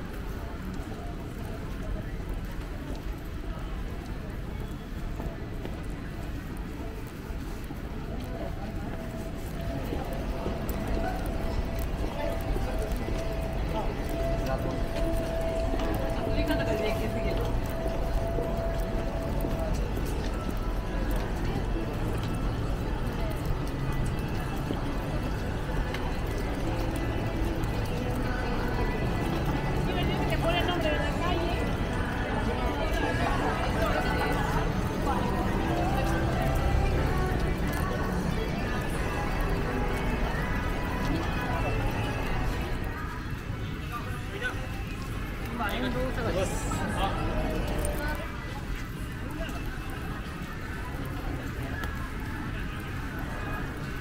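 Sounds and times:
footsteps on wet pavement: 0.0s - 54.0s
indistinct voices: 8.1s - 54.0s
music playing: 9.8s - 43.6s.

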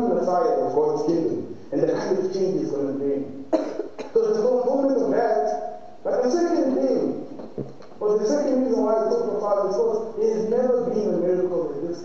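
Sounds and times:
man speaking: 0.0s - 7.4s, 8.0s - 12.0s
person coughing: 3.5s - 4.2s.

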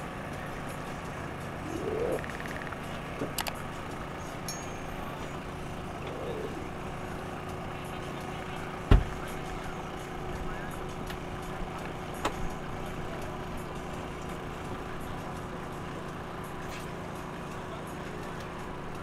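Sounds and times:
engine hum: 0.0s - 19.0s
faint steady tones: 0.3s - 13.5s
small clicks: 2.2s - 3.6s.

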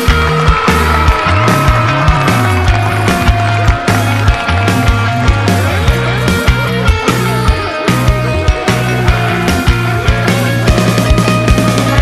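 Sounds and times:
heavy rock band playing: 0.0s - 12.0s.

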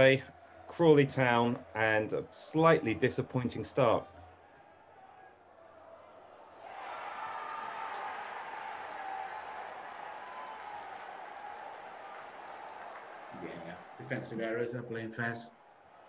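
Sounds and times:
stadium crowd din: 0.0s - 16.0s.

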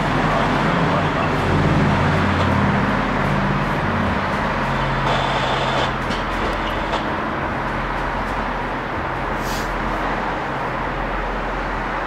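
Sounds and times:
locomotive engine hum: 0.0s - 12.0s
road traffic: 0.0s - 12.0s.

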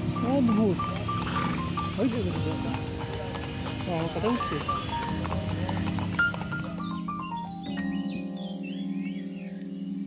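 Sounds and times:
hooves clip-clopping on bricks: 0.0s - 7.9s
melodic background music: 0.0s - 10.0s.

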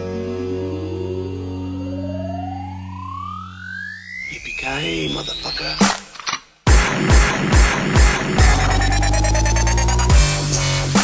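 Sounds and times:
low synth tones: 0.0s - 5.8s, 6.7s - 10.4s
rising synth sweep: 0.4s - 5.8s, 6.7s - 10.6s.

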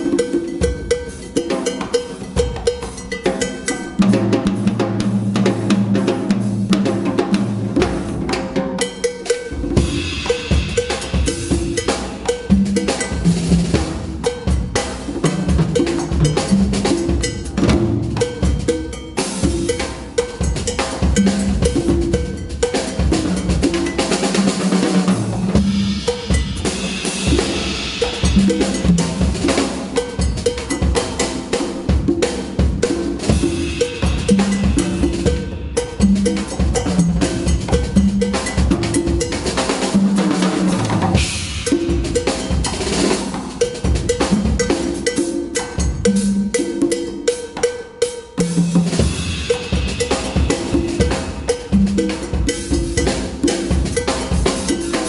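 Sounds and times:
congas playing: 0.0s - 55.0s
drum kit playing: 0.0s - 55.0s.

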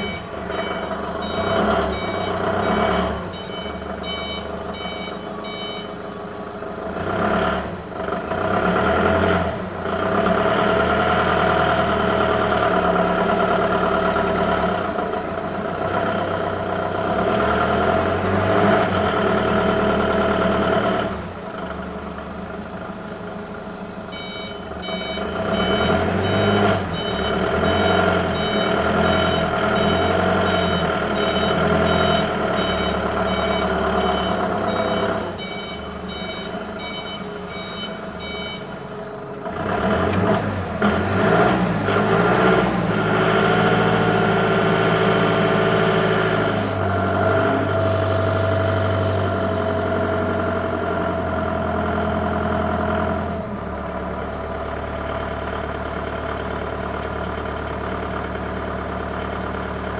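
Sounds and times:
reversing alarm beeps: 0.0s - 6.0s, 24.1s - 38.8s
forklift engine revving: 0.0s - 59.9s.

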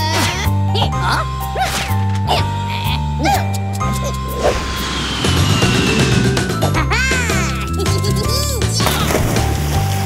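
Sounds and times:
upbeat cartoon music: 0.0s - 10.0s
comic pitch swoops: 3.9s - 6.9s.

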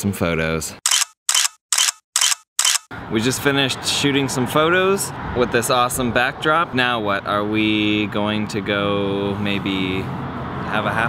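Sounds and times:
camera shutter clicking: 0.9s - 2.9s.

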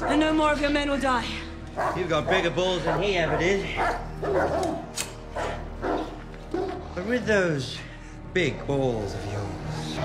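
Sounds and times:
dogs barking: 0.0s - 0.5s, 1.7s - 7.0s, 9.6s - 10.0s.

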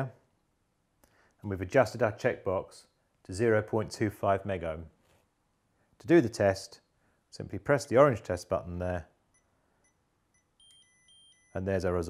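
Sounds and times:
short high beeps: 9.3s - 11.8s
soft electronic blips: 9.3s - 11.9s.

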